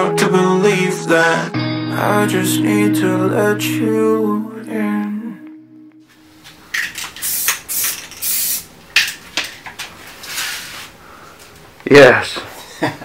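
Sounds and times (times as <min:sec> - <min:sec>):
hissing and rustling noises: 0:06.7 - 0:08.7, 0:09.8 - 0:11.6.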